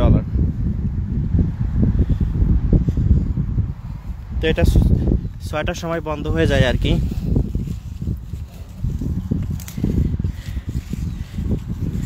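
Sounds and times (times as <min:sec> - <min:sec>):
microphone handling and wind rumble: 0:00.0 - 0:12.0
rustles and snaps of plants: 0:07.4 - 0:12.0.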